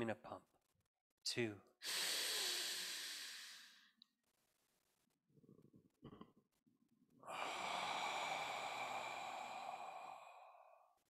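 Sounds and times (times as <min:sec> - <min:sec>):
man breathing out deeply: 0:01.8 - 0:03.8, 0:07.2 - 0:10.8.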